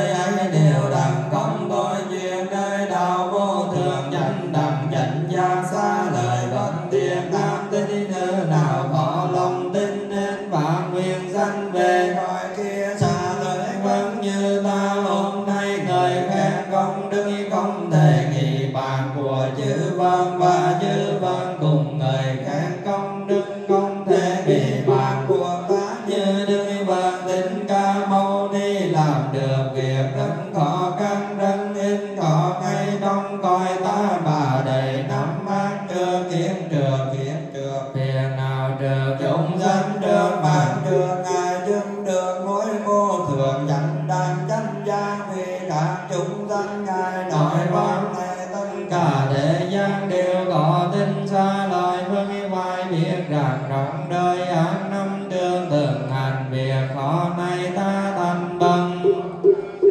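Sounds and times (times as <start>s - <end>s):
congregation chanting in unison: 0.0s - 59.9s.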